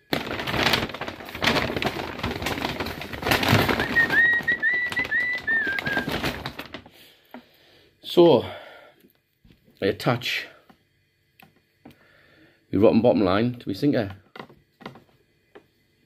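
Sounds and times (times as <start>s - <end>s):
crackly rustling and handling: 0.0s - 7.6s, 13.9s - 15.7s.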